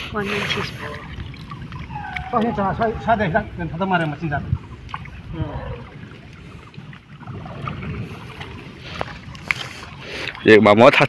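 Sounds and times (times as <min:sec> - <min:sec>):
water sloshing: 0:00.0 - 0:11.0.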